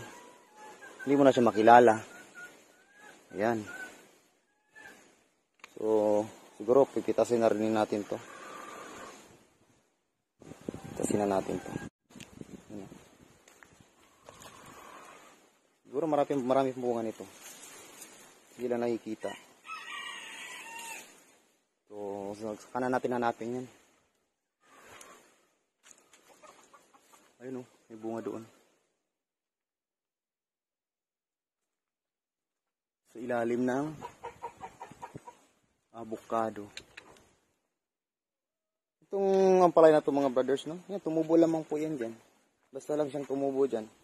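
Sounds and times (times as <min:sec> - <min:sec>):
leaves rustling: 0:10.4 - 0:28.9
rooster crowing: 0:19.3 - 0:21.2
chicken clucking: 0:25.9 - 0:27.4, 0:33.7 - 0:35.5.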